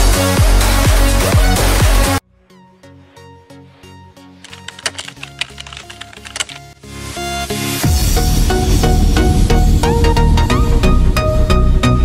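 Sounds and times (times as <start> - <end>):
soft music: 0.0 - 12.0
computer keyboard typing clicks: 4.5 - 6.7.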